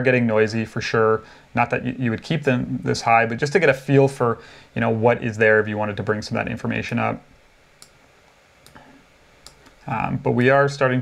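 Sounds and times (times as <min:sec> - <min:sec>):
man talking: 0:00.0 - 0:07.3, 0:09.8 - 0:11.0
computer mouse clicks: 0:09.4 - 0:09.8.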